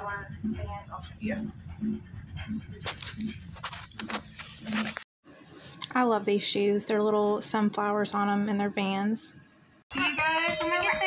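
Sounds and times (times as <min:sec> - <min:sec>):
rubbing and knocking on microphone: 0:01.3 - 0:05.1.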